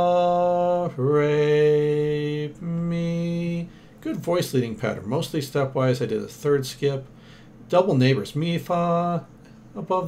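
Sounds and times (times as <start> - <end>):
man singing unaccompanied: 0.0 - 7.1, 7.7 - 10.0.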